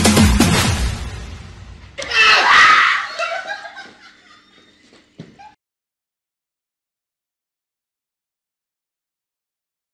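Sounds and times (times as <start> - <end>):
dance music: 0.0 - 1.2
girl screaming: 2.0 - 3.2.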